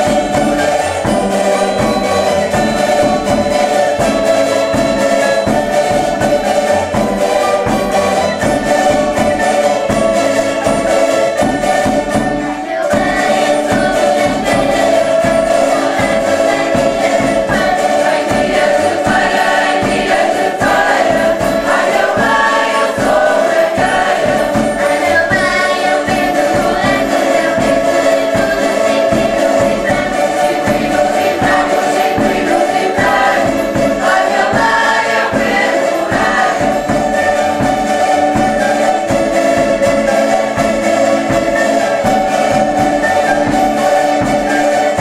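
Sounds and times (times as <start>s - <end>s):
group singing: 0.0s - 45.0s
small guitars strumming: 0.0s - 45.0s.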